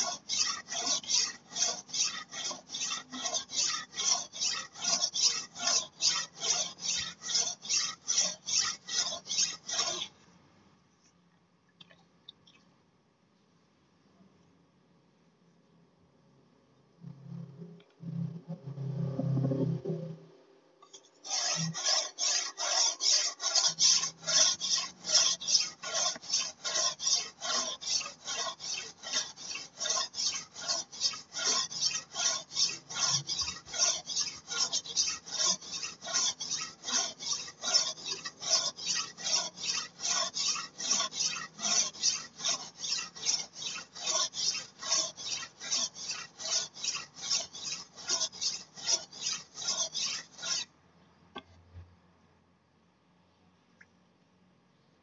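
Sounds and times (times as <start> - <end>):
blade rasping on a whetstone: 0.0 - 10.2, 21.2 - 50.7.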